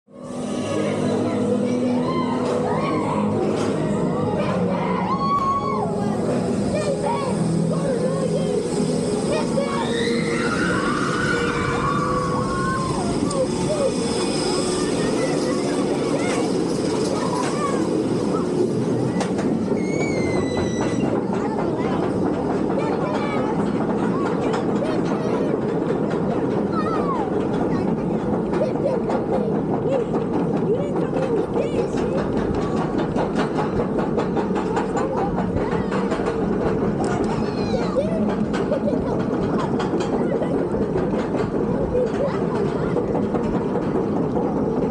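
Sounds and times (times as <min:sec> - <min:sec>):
roller coaster wheels rumbling on rail: 0:00.2 - 0:44.9.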